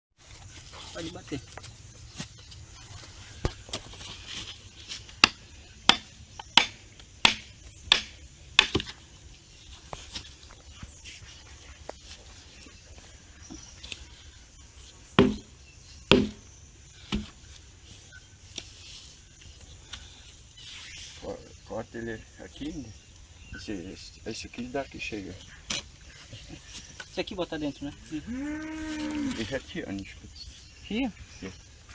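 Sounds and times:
wooden mallet knocks: 15.2s - 15.5s, 16.1s - 16.4s.

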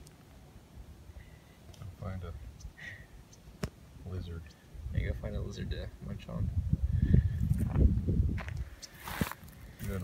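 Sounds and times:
dry brush and twigs rustling: 7.4s - 10.0s.

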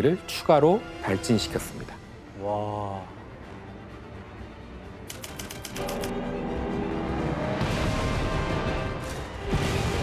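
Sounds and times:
typewriter key clicks: 5.1s - 6.1s.

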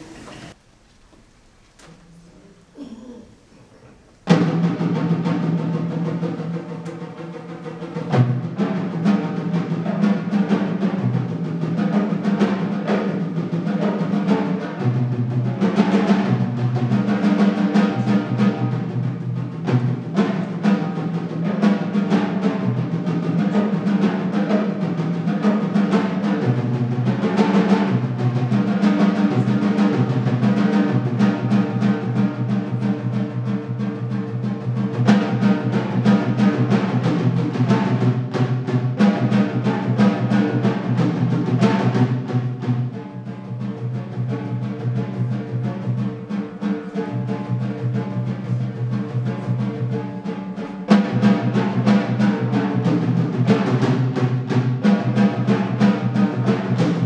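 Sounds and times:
tom-toms played with sticks: 0.0s - 57.0s.

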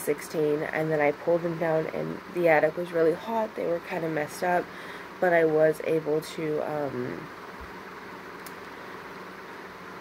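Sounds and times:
faint click: 8.4s - 8.8s.

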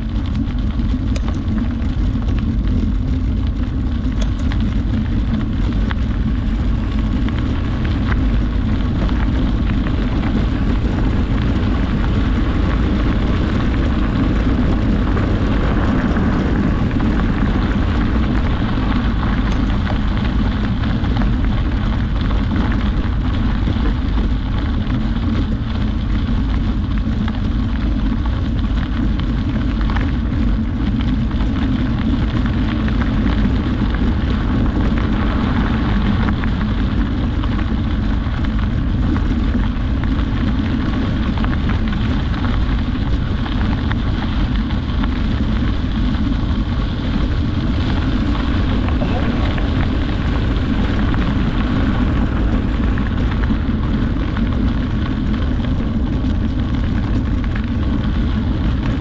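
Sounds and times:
wind rumble on microphone: 0.0s - 59.0s.

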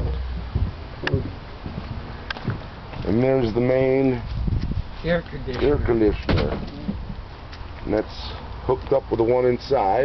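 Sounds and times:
footsteps outdoors: 0.0s - 10.0s.

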